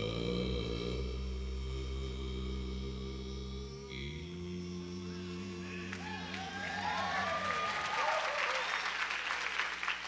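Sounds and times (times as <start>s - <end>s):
voices calling out: 5.3s - 8.8s
audience applauding: 5.8s - 10.0s.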